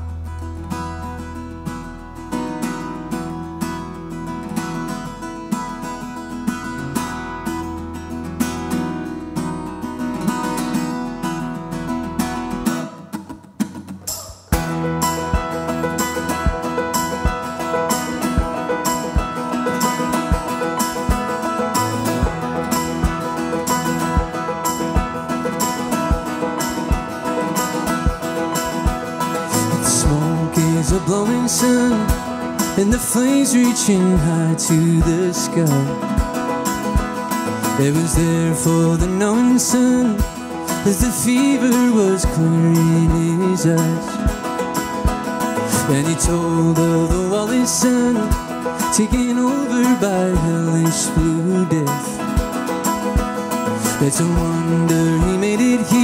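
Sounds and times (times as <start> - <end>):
low sustained bass: 0.0 - 8.4
keyboard: 0.0 - 56.0
picked banjo: 0.0 - 56.0
strummed acoustic guitar: 0.0 - 56.0
steady beat: 12.6 - 33.4, 34.1 - 39.5, 40.1 - 56.0.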